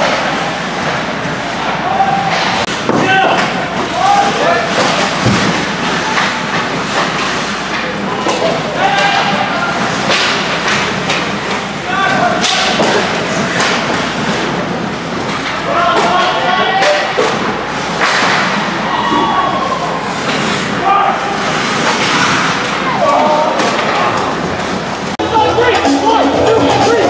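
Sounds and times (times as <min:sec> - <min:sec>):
hockey sticks clacking: 0:00.0 - 0:18.7, 0:21.4 - 0:26.2
thud against rink boards: 0:04.7 - 0:07.3.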